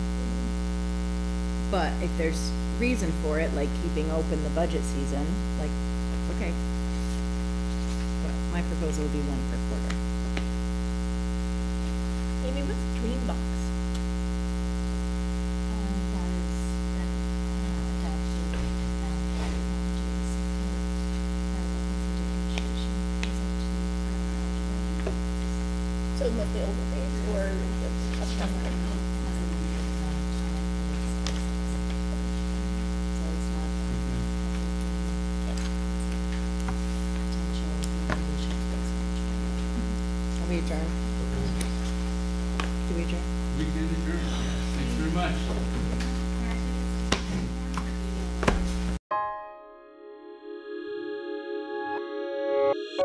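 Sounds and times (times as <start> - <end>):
electrical mains hum: 0.0 - 49.0.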